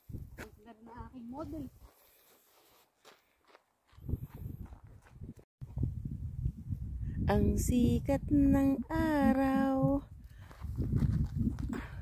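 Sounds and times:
faint footsteps on gravel: 0.3 - 5.4.

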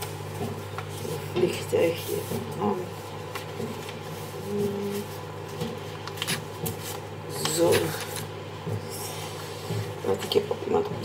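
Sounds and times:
paper rustling and creasing: 2.0 - 8.3.

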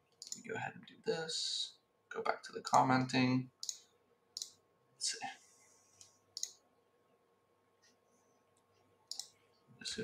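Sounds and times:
computer mouse clicking: 0.1 - 0.5, 3.6 - 4.6, 6.0 - 6.6, 8.6 - 9.4.

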